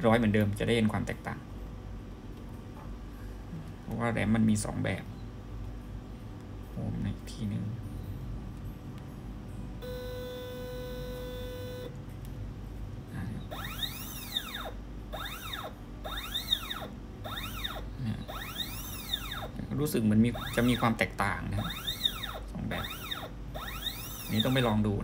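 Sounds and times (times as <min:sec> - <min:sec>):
stepper motor whine: 0:09.8 - 0:12.0, 0:13.5 - 0:19.6, 0:20.3 - 0:21.0, 0:21.6 - 0:24.8.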